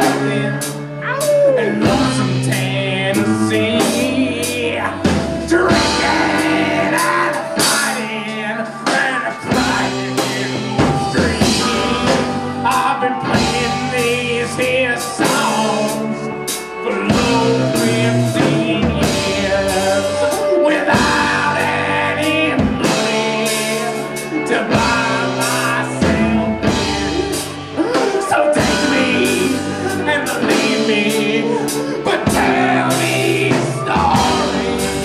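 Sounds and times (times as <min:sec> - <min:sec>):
drum kit: 0:00.0 - 0:35.0
electric guitar: 0:00.0 - 0:35.0
fiddle: 0:00.0 - 0:35.0
man singing lead: 0:00.0 - 0:35.0.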